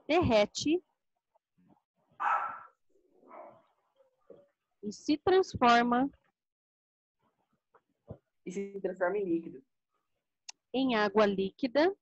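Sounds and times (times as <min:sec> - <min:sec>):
short animal calls: 0:02.2 - 0:03.5.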